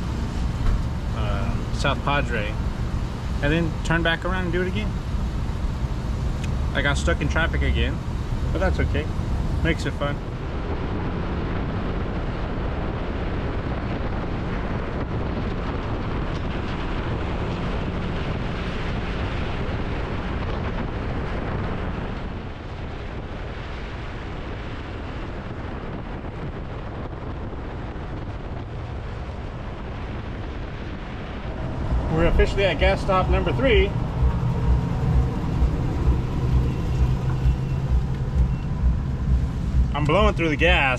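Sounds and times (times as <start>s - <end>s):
motorcycle running at speed: 0.0s - 40.9s
wind rushing over microphone: 0.0s - 40.9s.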